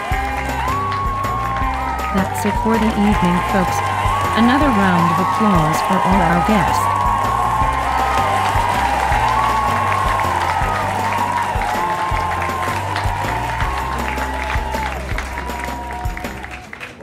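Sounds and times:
music with bass line: 0:00.0 - 0:16.5
applause: 0:00.0 - 0:17.0.

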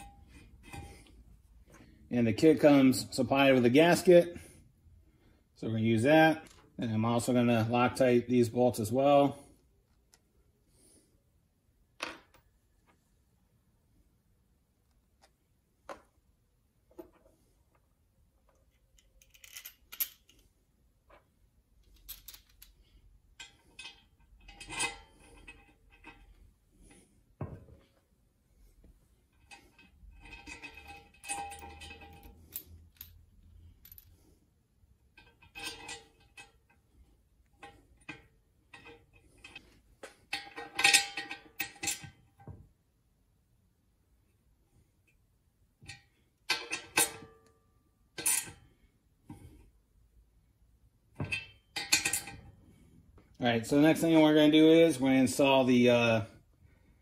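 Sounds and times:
metal parts clinking on metal pan: 0:51.2 - 0:52.5.

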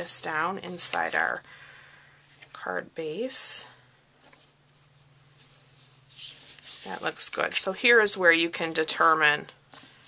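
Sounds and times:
hands rubbing cardstock: 0:04.2 - 0:07.7, 0:08.6 - 0:10.0.

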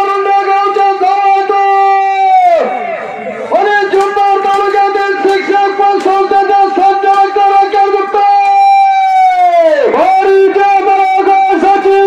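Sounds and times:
man chanting over loudspeaker: 0:00.0 - 0:12.0.

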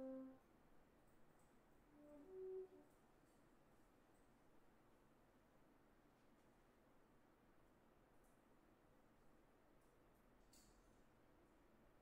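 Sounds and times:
faint held notes of a tune: 0:00.0 - 0:00.4.

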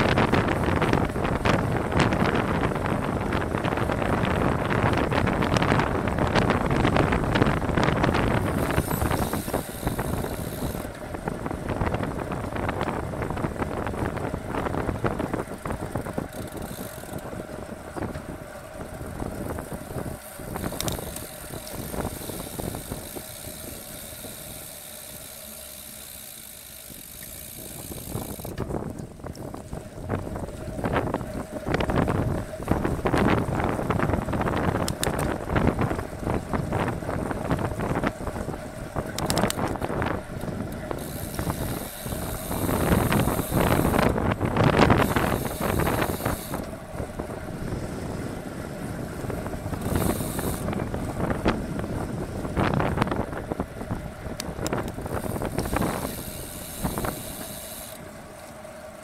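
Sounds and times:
wind buffeting microphone: 0:00.0 - 0:58.4
tyre and road noise: 0:00.0 - 0:59.0.

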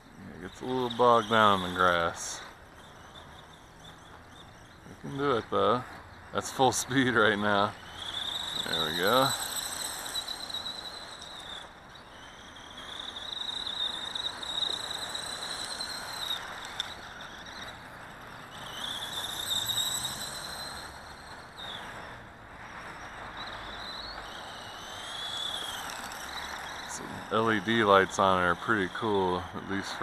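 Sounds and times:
electric motor whining: 0:00.0 - 0:30.0
steady rushing noise: 0:00.0 - 0:30.0.

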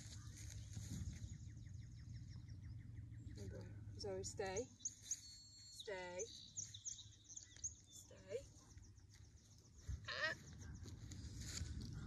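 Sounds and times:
low steady rumble: 0:00.0 - 0:05.6
faint bird chirps: 0:04.6 - 0:11.2.

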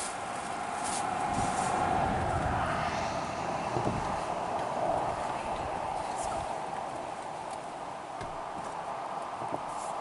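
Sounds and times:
vehicle passing on highway: 0:00.0 - 0:10.0.

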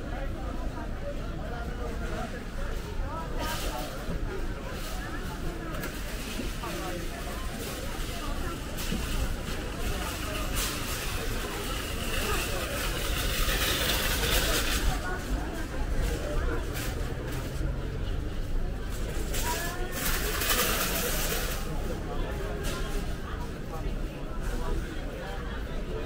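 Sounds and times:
crowd of shoppers talking: 0:00.0 - 0:26.0
shopping trolleys rattling on concrete: 0:01.8 - 0:26.0.

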